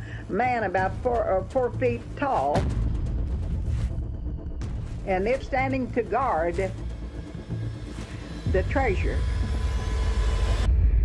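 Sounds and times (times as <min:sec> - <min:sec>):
deep steady rumble: 0:00.0 - 0:11.0.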